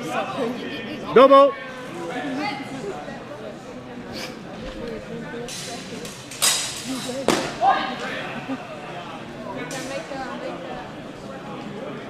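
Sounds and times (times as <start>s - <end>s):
voices talking in a hall: 0.0s - 12.0s.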